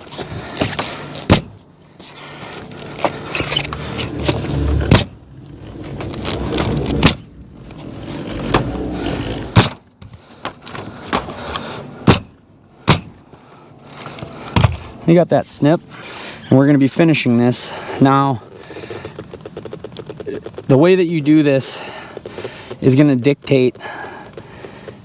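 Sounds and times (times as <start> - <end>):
nail gun shots: 1.3 - 1.6, 9.6 - 9.8, 12.0 - 13.2.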